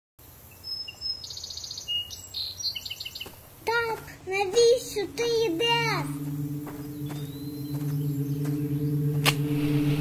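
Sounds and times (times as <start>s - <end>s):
songbirds chirping and trilling: 0.2s - 10.0s
person speaking: 3.6s - 6.5s.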